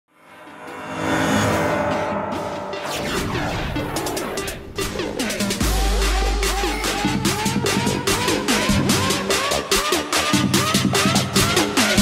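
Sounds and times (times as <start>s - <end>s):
sharp crash-like impact: 0.2s - 5.1s
electronic music: 0.2s - 12.0s.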